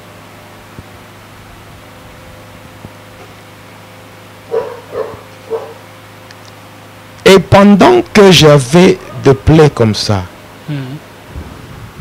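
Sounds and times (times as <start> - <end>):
faint steady hum: 0.0 - 12.0
short barking calls: 4.5 - 5.9, 9.0 - 9.4.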